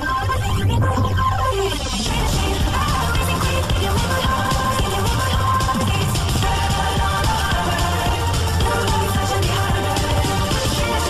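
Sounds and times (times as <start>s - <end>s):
loud electronic music: 0.0s - 11.0s.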